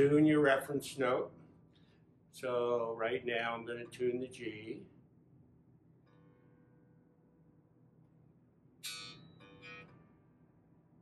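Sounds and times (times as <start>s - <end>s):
electric bass string plucked: 8.8s - 10.1s.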